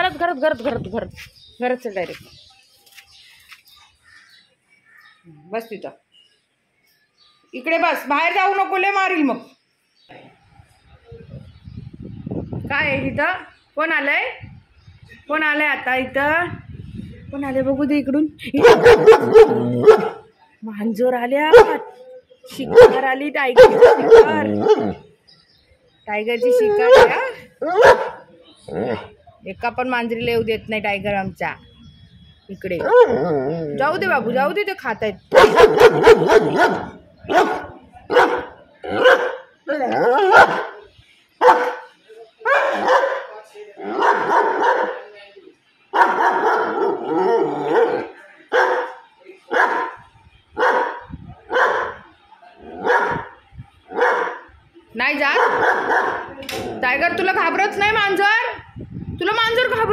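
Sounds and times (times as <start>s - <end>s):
dog barking: 18.6s - 20.2s, 21.5s - 25.0s, 26.9s - 27.2s, 27.8s - 28.2s, 35.3s - 39.4s, 40.2s - 40.8s, 41.4s - 43.3s, 44.0s - 45.0s, 46.0s - 50.0s, 50.6s - 52.0s, 52.8s - 53.3s, 53.9s - 54.5s, 55.3s - 56.4s.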